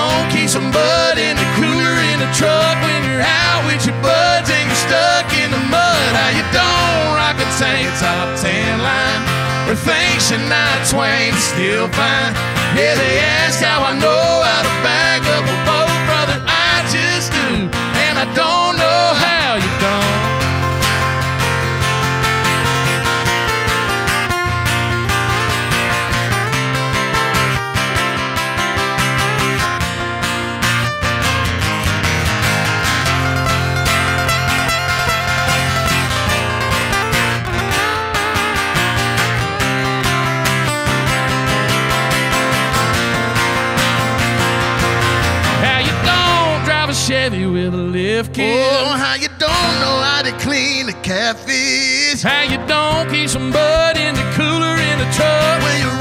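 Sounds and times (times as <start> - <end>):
person singing: 0.0 - 20.5, 45.5 - 56.0
acoustic guitars strumming: 0.0 - 56.0.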